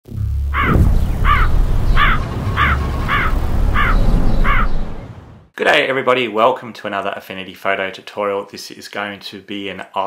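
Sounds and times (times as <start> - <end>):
low rumbling music: 0.1 - 5.3
crow cawing: 0.6 - 4.8.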